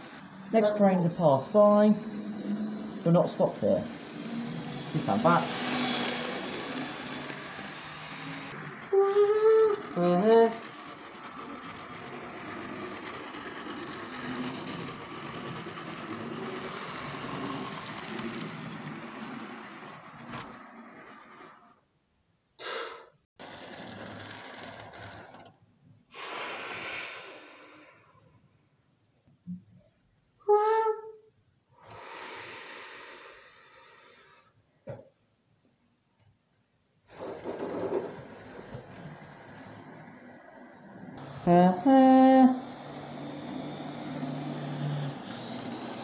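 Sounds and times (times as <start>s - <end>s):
model train rumbling on track: 0.0s - 21.8s, 23.4s - 25.5s, 37.1s - 46.0s.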